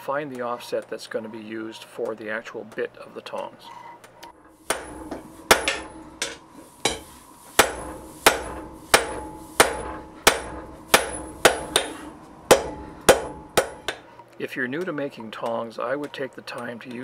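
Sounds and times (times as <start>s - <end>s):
hammer blows on anvil: 4.5s - 14.0s
anvil ringing: 4.6s - 14.0s.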